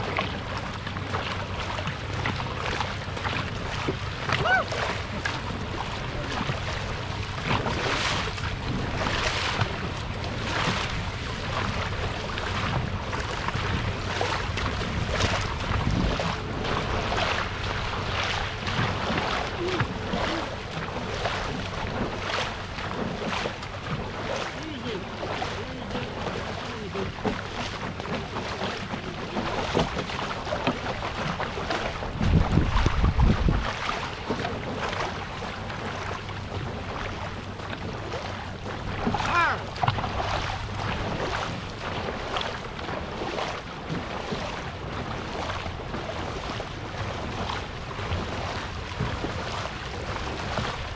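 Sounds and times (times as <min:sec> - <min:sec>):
wind on microphone: 0:00.0 - 0:35.7
paddle strokes: 0:00.0 - 0:50.9
water rushing past hull: 0:00.0 - 0:50.9.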